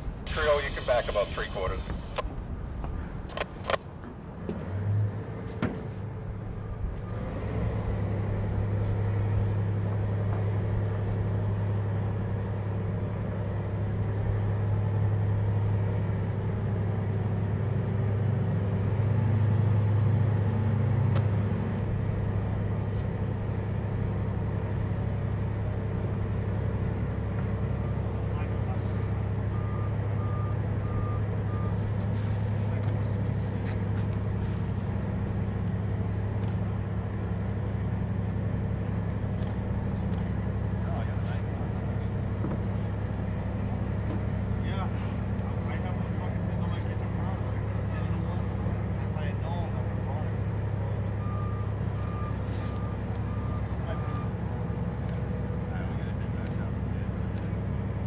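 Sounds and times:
diesel engines droning: 0:00.0 - 0:58.0
faint beeps: 0:00.3 - 0:02.3, 0:51.2 - 0:54.4.

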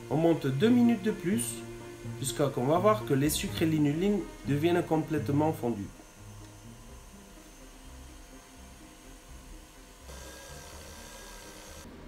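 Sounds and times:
whisk beating meringue: 0:00.0 - 0:11.8
stand mixer motor whining: 0:00.0 - 0:12.0.

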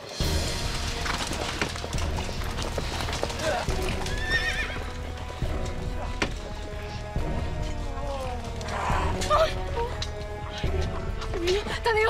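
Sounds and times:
dramatic background music: 0:00.0 - 0:12.0
horses galloping on dirt: 0:00.2 - 0:12.0
horse whinnying: 0:03.2 - 0:05.4.

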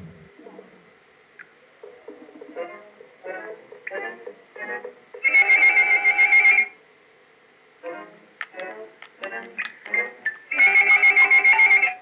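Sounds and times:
shrill trilling sound effect: 0:10.5 - 0:12.0.

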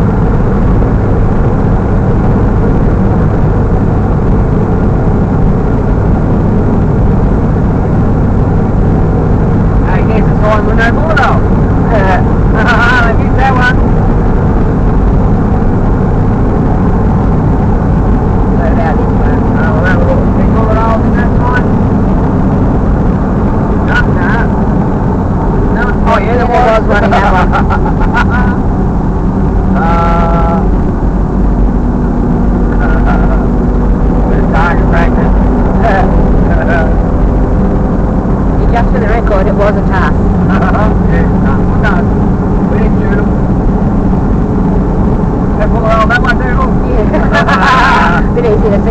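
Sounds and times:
engine and road noise rumble: 0:00.0 - 0:48.9.

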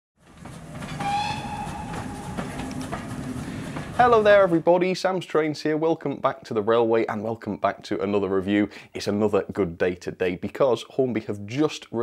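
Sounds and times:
train running rumble: 0:00.2 - 0:04.7
train whistle: 0:00.9 - 0:03.6.

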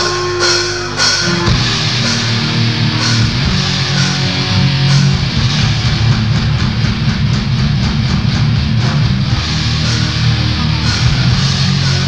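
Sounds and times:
bass guitar: 0:00.0 - 0:12.0
distorted electric guitars: 0:00.0 - 0:12.0
fast drumming: 0:00.0 - 0:12.0.

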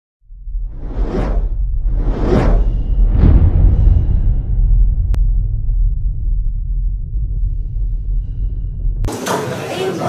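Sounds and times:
deep rumbling bass drone: 0:00.2 - 0:09.1.

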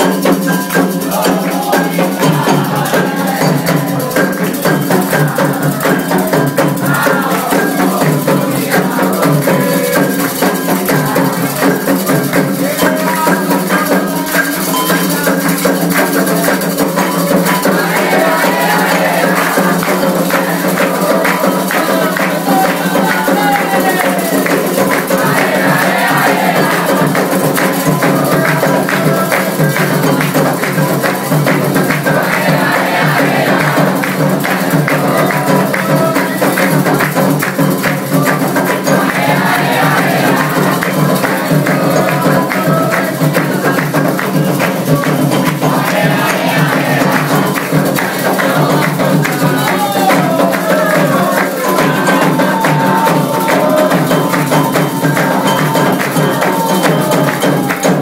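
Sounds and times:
bell: 0:00.0 - 0:58.0
hand drums beating: 0:00.0 - 0:58.0
shakers: 0:00.0 - 0:58.0
group of voices chanting: 0:01.0 - 0:10.3, 0:17.5 - 0:30.2, 0:31.5 - 0:36.8, 0:38.1 - 0:43.8, 0:44.9 - 0:58.0
handclaps: 0:07.0 - 0:58.0.

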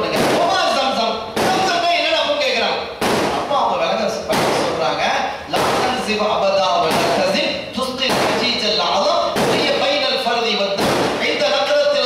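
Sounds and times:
man lecturing into a microphone: 0:00.0 - 0:12.0.

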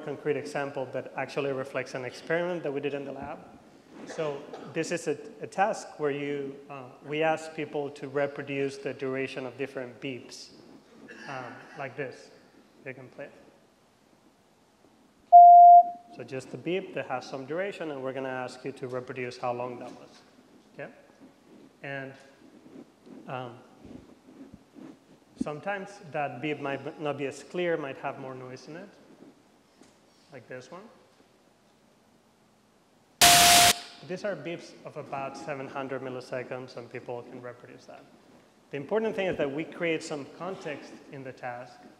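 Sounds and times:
electronic beep: 0:15.3 - 0:16.0, 0:33.2 - 0:33.8
loud hiss: 0:33.2 - 0:34.0.

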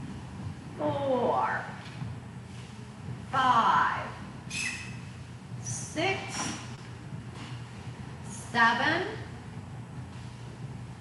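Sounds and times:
shoe soles squeaking on wooden floor: 0:04.5 - 0:05.2.

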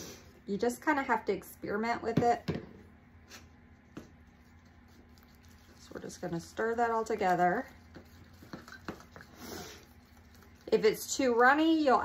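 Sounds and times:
stirring thick mix in cup: 0:03.7 - 0:12.0
stirrer scraping cup: 0:04.2 - 0:11.7.

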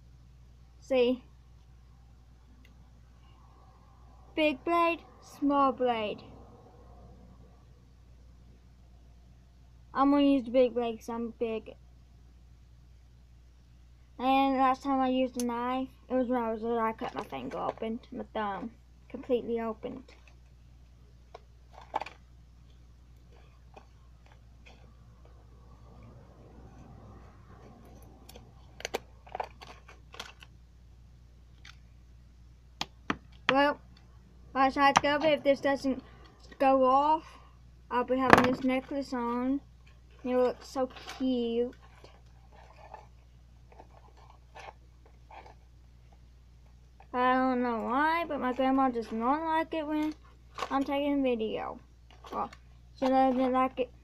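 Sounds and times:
low steady hum: 0:00.0 - 0:54.0
package rustling: 0:21.4 - 0:22.3, 0:28.3 - 0:30.6.

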